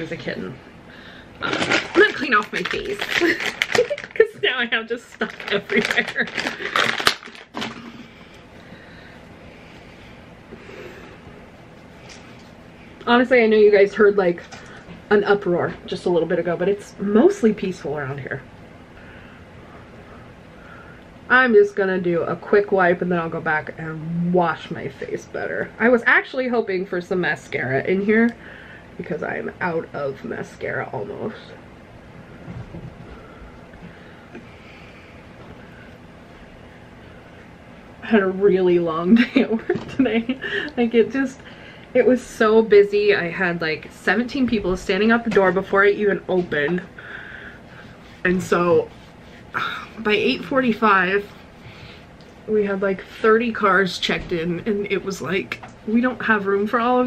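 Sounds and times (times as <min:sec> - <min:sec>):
plastic packet crinkling: 0:01.4 - 0:07.8.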